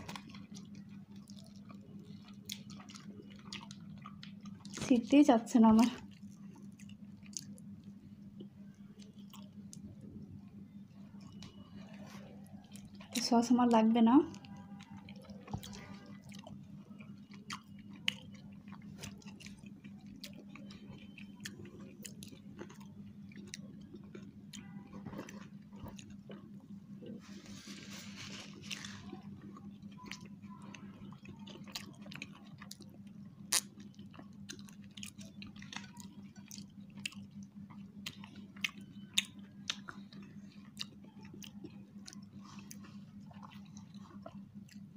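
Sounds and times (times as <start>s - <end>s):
people chewing with mouth smacks: 0.0s - 5.2s, 5.8s - 44.9s
steady low hum: 0.0s - 44.9s.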